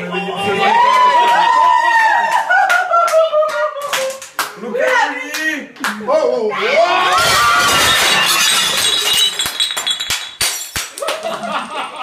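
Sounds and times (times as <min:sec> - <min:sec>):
glass breaking: 0:07.2 - 0:11.2
glass pieces clinking: 0:07.2 - 0:11.2.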